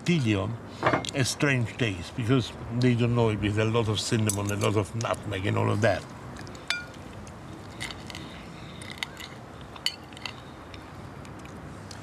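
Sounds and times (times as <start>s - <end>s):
cutlery clinking on plates and glass: 6.7s - 7.0s.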